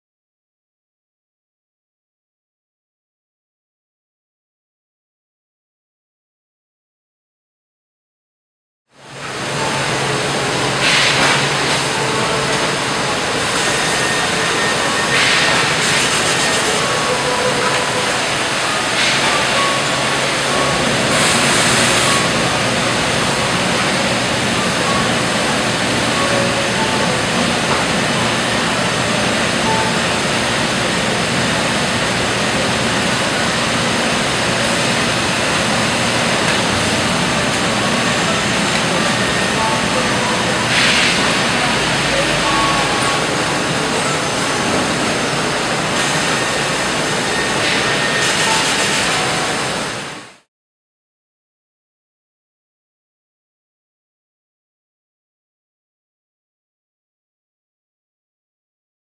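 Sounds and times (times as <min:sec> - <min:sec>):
machinery roar: 0:09.0 - 0:50.5.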